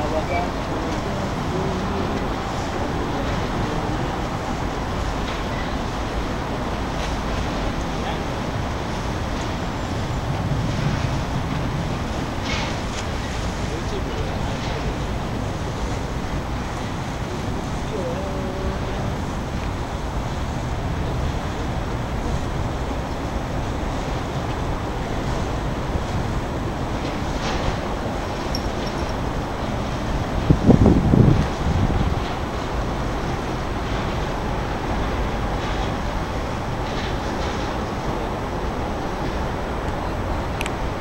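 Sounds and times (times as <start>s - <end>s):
low outdoor rumble: 0.0s - 41.0s.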